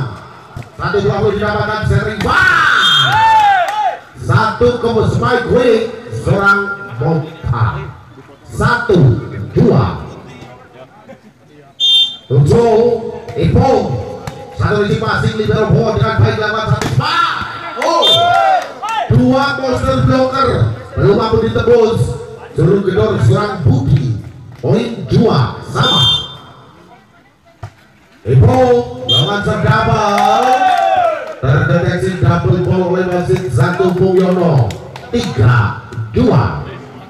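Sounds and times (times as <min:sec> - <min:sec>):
commentator speaking with echo: 0:00.0 - 0:02.9, 0:04.1 - 0:10.6, 0:18.9 - 0:26.7, 0:28.2 - 0:30.4
referee's whistle blast: 0:02.6 - 0:03.4, 0:11.8 - 0:12.4, 0:17.9 - 0:18.4, 0:25.7 - 0:26.6, 0:29.1 - 0:29.5
faint crowd murmur: 0:06.7 - 0:12.3, 0:25.6 - 0:29.2, 0:34.8 - 0:37.0.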